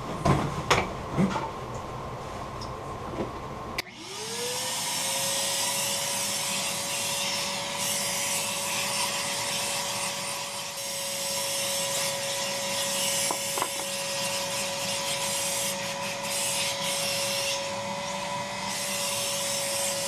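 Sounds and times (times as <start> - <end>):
electric motor whining: 3.8 - 8.2.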